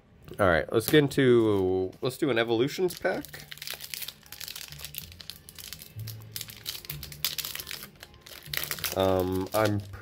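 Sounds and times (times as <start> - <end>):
foil wrapper crinkling: 2.6 - 10.0.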